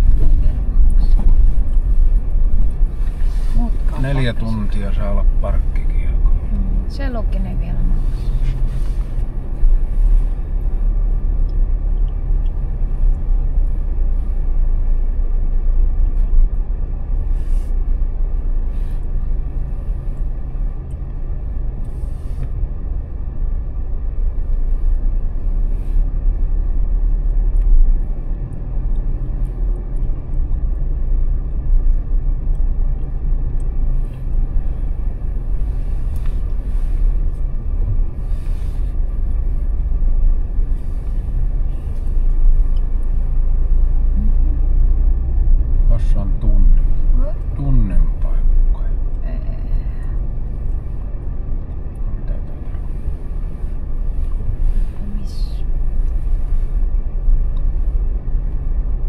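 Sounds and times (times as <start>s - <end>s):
car driving slowly on concrete: 0.0s - 59.0s.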